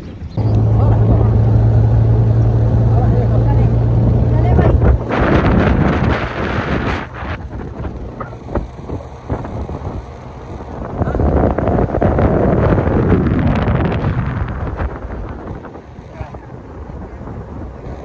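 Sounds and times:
vehicle ride rumbling: 0:00.0 - 0:18.0
wind buffeting microphone: 0:00.0 - 0:18.0
vehicle engine droning: 0:00.4 - 0:18.0.

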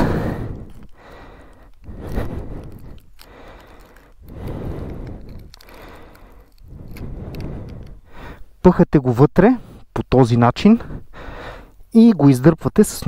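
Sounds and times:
hands rustling and scraping: 0:00.0 - 0:08.5.

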